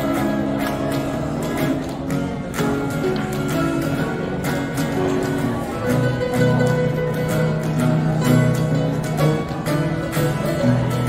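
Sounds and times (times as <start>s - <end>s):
acoustic guitars playing: 0.0s - 11.0s
small plucked string instrument: 0.0s - 11.0s.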